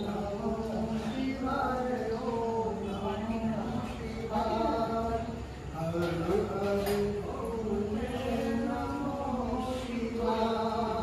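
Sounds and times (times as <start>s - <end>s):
person chanting mantras: 0.0s - 11.0s.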